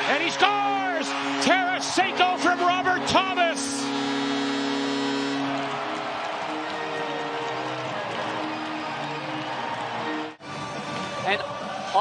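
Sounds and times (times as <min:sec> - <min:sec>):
crowd cheering: 0:00.0 - 0:10.8
arena celebration music: 0:00.0 - 0:12.0.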